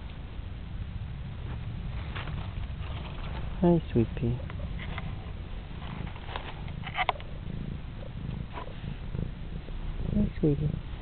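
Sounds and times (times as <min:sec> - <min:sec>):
cat purring: 0:00.7 - 0:11.0.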